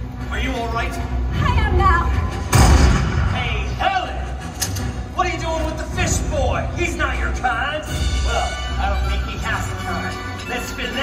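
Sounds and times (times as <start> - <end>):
background music: 0.0 - 11.0
loud thud: 2.5 - 3.3.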